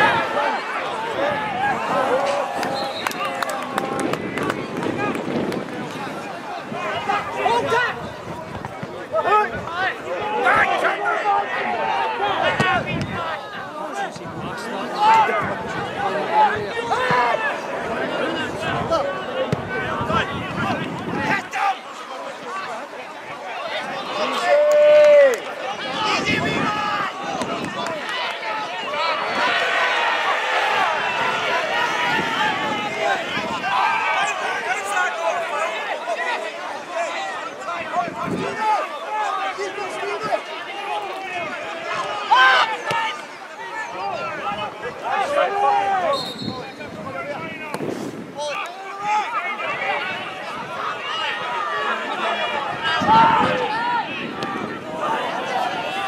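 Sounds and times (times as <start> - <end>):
people shouting: 0.0 - 5.2, 8.9 - 14.1, 23.7 - 47.7, 48.4 - 56.0.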